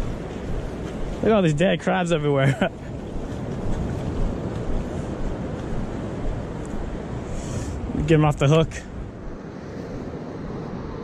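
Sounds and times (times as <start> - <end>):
shallow surf on sand: 0.0 - 11.0
wind buffeting microphone: 0.0 - 11.0.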